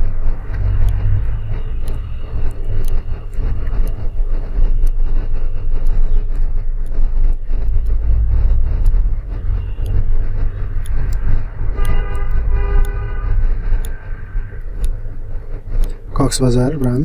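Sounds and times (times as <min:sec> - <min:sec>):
traffic engines rumbling: 0:00.0 - 0:17.0
vehicle horn honking: 0:11.8 - 0:13.3.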